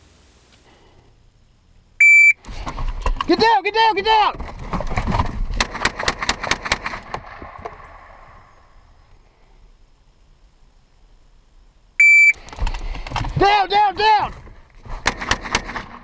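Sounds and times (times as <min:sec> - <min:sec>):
short electronic beep: 0:02.0 - 0:02.4, 0:12.0 - 0:12.4.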